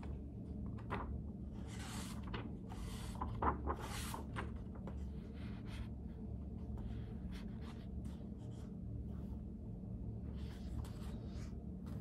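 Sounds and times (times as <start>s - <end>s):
steady low hum: 0.0s - 12.0s
paper pages rustling: 0.5s - 9.4s.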